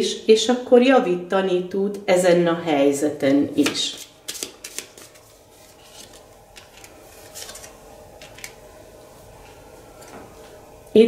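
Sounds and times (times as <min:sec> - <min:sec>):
cards clicking and flicking: 0:03.6 - 0:05.2
faint card rustling: 0:03.6 - 0:08.6.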